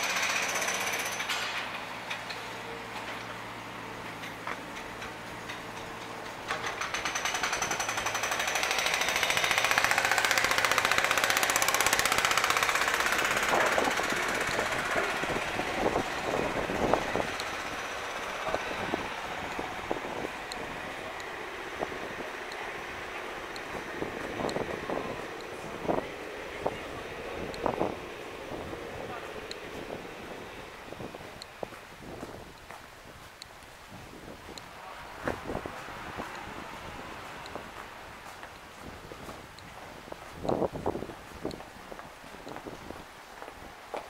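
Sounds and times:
jackhammer hammering rapidly: 0.0s - 1.8s, 6.5s - 30.3s.

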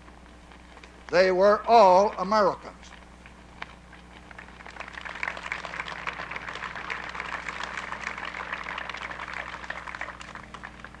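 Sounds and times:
steady low hum: 0.0s - 11.0s
audience applauding: 1.4s - 11.0s.

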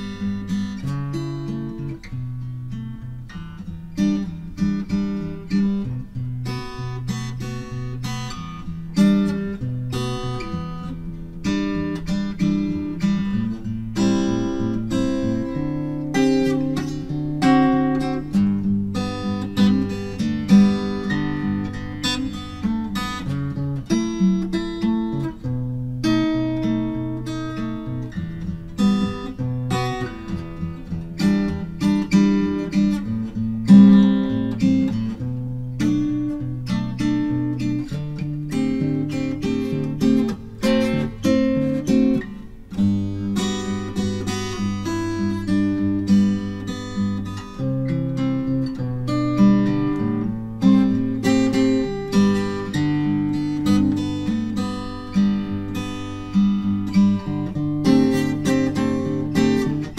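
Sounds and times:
acoustic guitar played solo: 0.0s - 59.9s.

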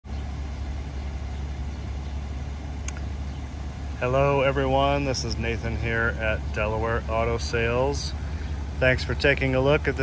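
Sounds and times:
car engine idling: 0.0s - 10.0s
faint click: 2.8s - 3.1s.

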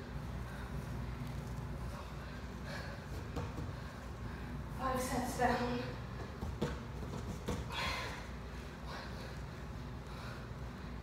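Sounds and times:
low room hum: 0.0s - 11.0s.

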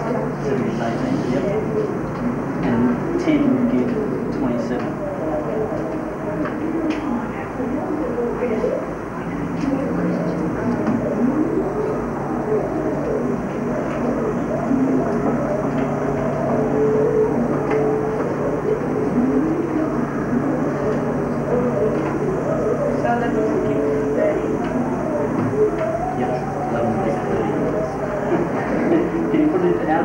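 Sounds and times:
steady low hum: 0.0s - 30.0s
students talking: 0.0s - 30.0s.

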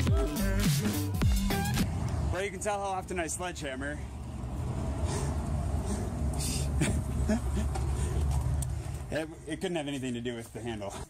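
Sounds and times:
low outdoor rumble: 1.2s - 10.8s.

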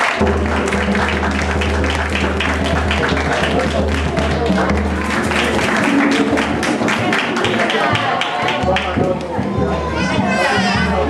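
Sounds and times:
hands clapping: 0.0s - 10.6s
hand drums playing: 0.0s - 11.0s
voices: 2.9s - 11.0s.

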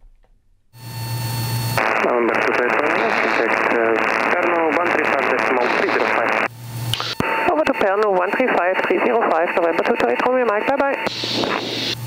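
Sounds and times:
low radio hum: 0.0s - 12.0s
voice over radio: 1.8s - 11.6s.

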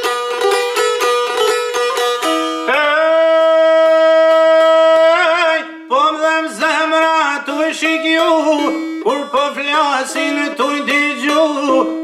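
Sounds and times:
man singing a long held note: 2.6s - 12.0s.

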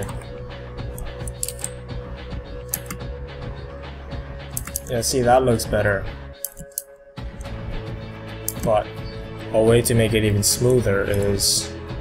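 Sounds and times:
quiet background music: 0.0s - 12.0s
computer mouse clicks: 0.9s - 1.8s, 2.7s - 3.0s, 4.5s - 4.9s, 6.4s - 7.5s, 8.4s - 8.8s.

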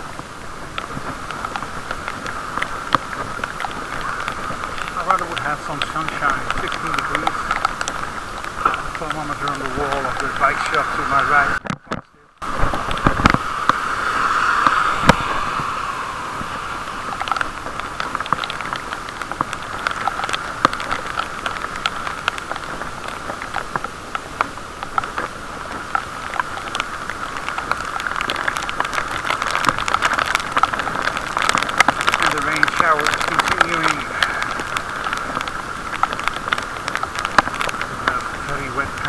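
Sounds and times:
bicycle tyres hissing on wet street: 0.0s - 11.6s, 12.4s - 39.0s
raindrops ticking on camera case: 0.0s - 39.0s.

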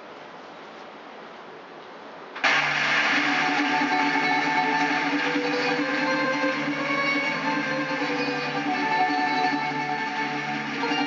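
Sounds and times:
recording hiss: 0.0s - 11.0s
live band playing held notes: 2.4s - 11.0s.

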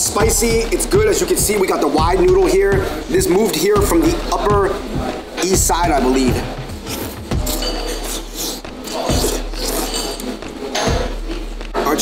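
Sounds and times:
person slurping noodles: 6.8s - 10.4s.

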